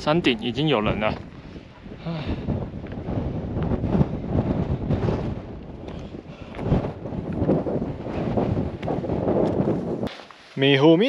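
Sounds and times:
wind buffeting microphone: 0.0s - 10.1s.

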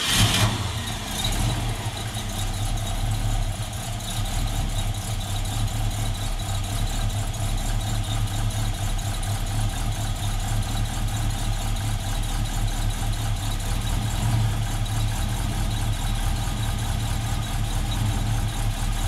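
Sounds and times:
engine starting and idling: 0.0s - 19.0s.

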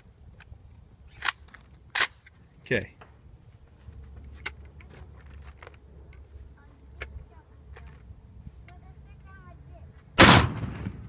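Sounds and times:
rifle action metallic clacks: 1.1s - 2.4s.

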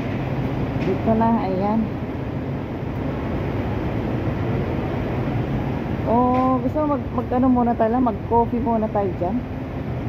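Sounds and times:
low rumble of city street noise: 0.0s - 10.0s.

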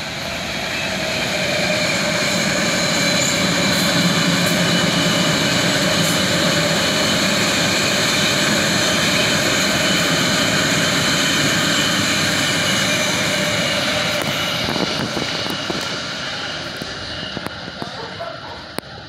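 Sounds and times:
train rushing past on rails: 0.0s - 19.0s
high-pitched whining tones: 0.1s - 19.0s.

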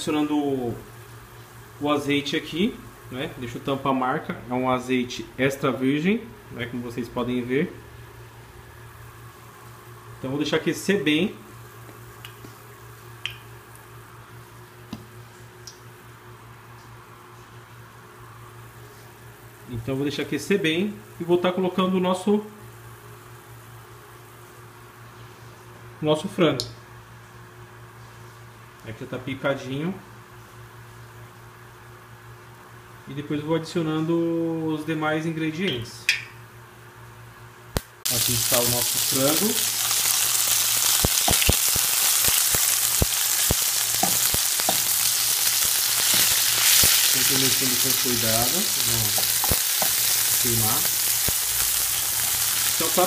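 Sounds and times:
gas burner low hum: 0.0s - 53.0s
oil ticking in a frying pan: 38.9s - 47.1s.

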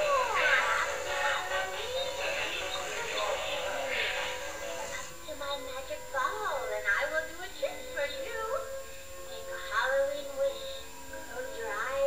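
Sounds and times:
synthetic singing voice over music: 0.0s - 5.0s.

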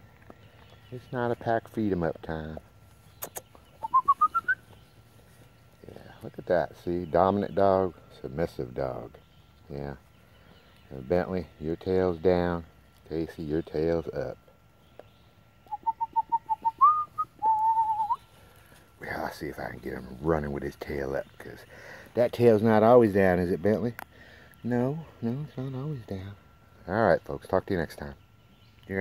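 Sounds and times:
short whistled notes rising: 3.8s - 4.6s, 15.7s - 18.2s.

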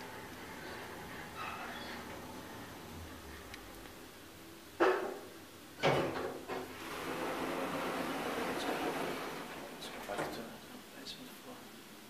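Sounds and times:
elevator doors opening rush: 0.0s - 3.8s, 6.0s - 10.5s.

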